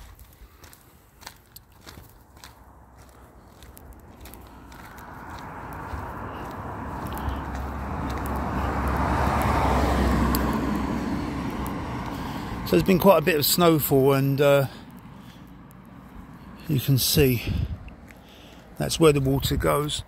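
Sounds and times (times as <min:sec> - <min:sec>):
car approaching: 0:00.0 - 0:20.0.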